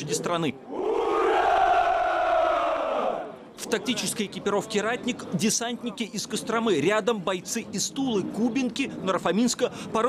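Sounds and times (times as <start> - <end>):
soldiers shouting a cheer: 0.7 - 3.3.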